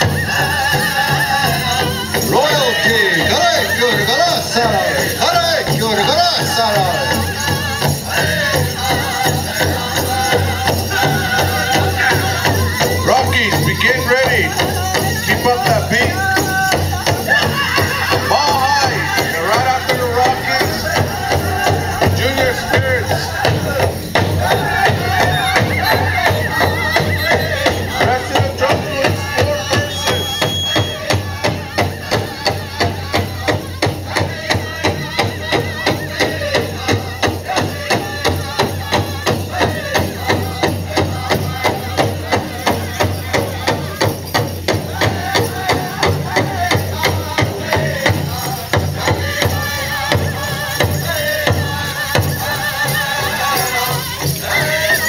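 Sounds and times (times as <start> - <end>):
steady beat on large drum: 0.0 - 29.8
drum group singing: 0.0 - 55.0
jingling regalia: 0.0 - 55.0.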